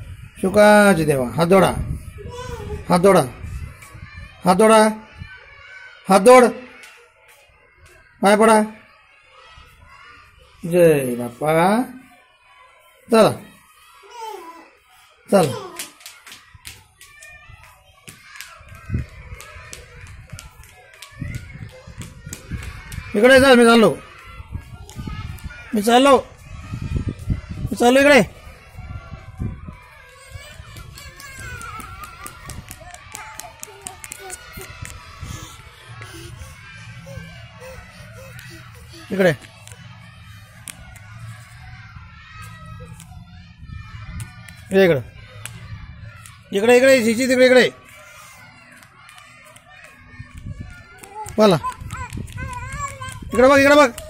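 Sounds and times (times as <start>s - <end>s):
children chattering: 0.0s - 54.0s
light irregular taps and clicks: 45.4s - 45.6s.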